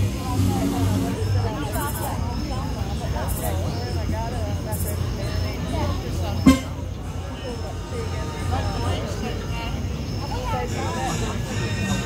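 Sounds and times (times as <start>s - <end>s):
indistinct voices talking: 0.0s - 12.0s
sharp knock: 6.5s - 6.8s.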